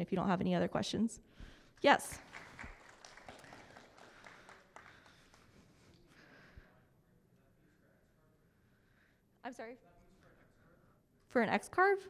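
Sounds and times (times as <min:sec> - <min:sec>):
faint audience clapping: 0:01.8 - 0:06.1.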